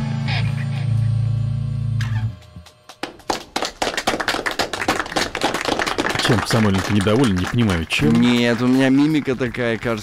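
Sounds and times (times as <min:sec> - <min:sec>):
people clapping: 0:02.4 - 0:10.0.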